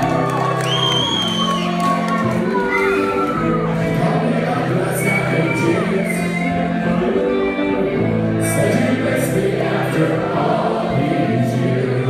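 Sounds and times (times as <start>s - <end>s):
crowd shouts and whoops: 0.0s - 4.0s, 4.8s - 6.7s.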